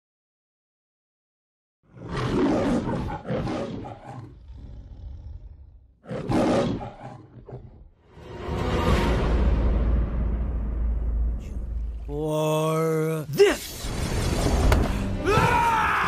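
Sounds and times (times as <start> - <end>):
cartoon dinosaur roaring: 1.9 - 7.8.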